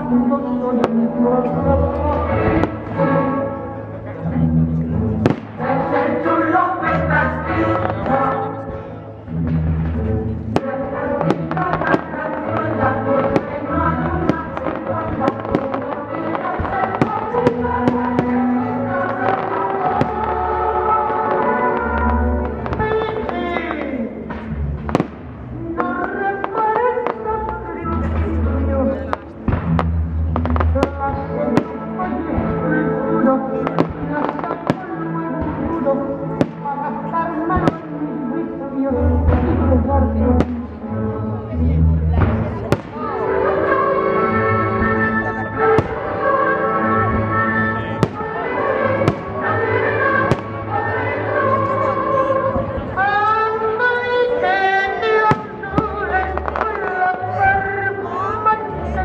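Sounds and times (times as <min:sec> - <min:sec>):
loud music: 0:00.0 - 0:59.0.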